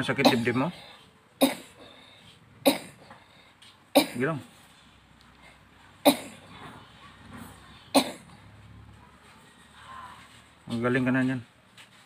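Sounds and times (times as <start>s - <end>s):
boy coughing: 0.2s - 0.8s, 1.4s - 1.9s, 2.6s - 3.1s, 4.0s - 4.3s, 6.0s - 6.5s, 7.9s - 8.3s.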